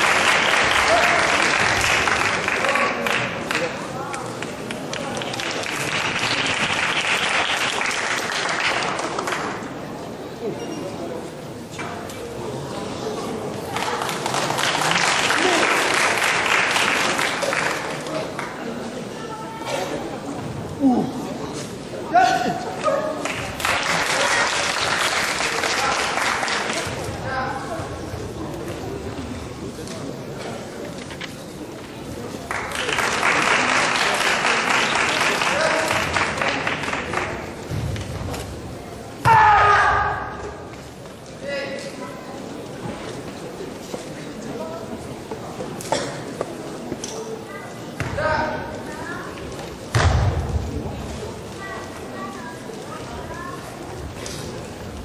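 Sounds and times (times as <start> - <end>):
audience applauding: 0.0 - 3.7, 4.4 - 9.5, 13.7 - 18.5, 23.1 - 26.8, 32.4 - 37.4.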